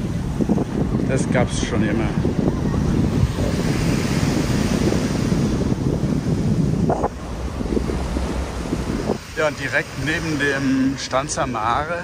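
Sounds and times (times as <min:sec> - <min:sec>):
small waves washing on beach: 0:00.0 - 0:12.0
wind buffeting microphone: 0:00.0 - 0:12.0.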